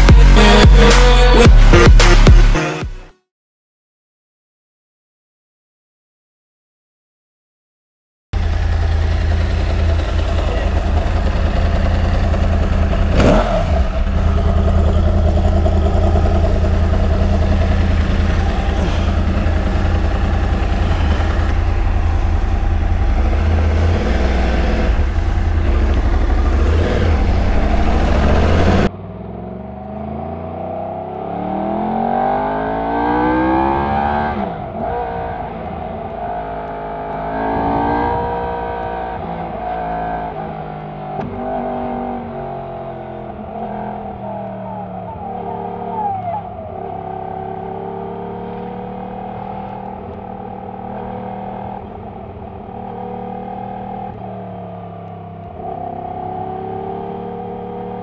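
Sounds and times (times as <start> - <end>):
motorcycle engine idling: 8.4 - 29.7
motorcycle accelerating: 8.4 - 58.0.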